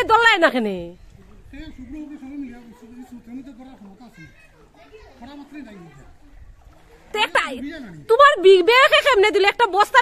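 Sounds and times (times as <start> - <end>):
people talking off-microphone: 0.0 - 10.0
nearby talk: 1.0 - 8.0.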